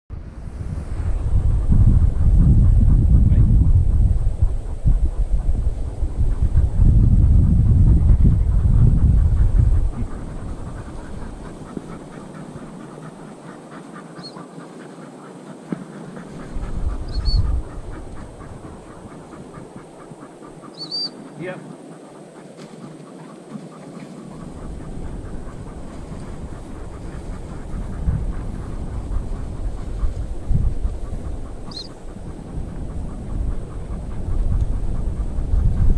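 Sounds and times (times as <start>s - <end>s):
wind buffeting microphone: 0.1s - 35.9s.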